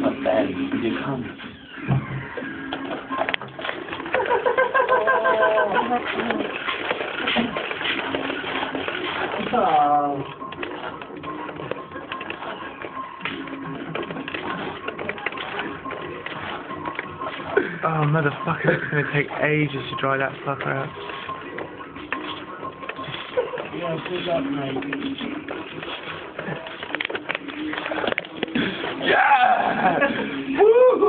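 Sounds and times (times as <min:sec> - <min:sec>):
background music: 0:00.0 - 0:31.0
stifled laughter: 0:04.1 - 0:06.2.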